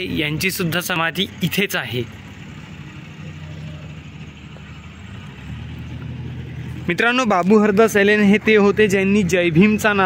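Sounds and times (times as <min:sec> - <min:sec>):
vehicle engine running low revs: 0:00.0 - 0:10.0.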